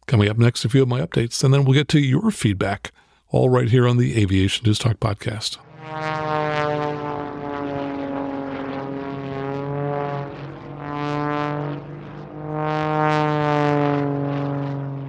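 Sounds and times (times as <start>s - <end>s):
propeller airplane engine drone: 5.2s - 15.0s.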